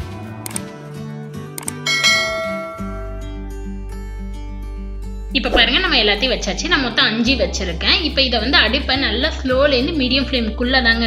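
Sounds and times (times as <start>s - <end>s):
background music: 0.0s - 11.0s
sharp clicks: 0.4s - 0.6s, 1.6s - 1.8s.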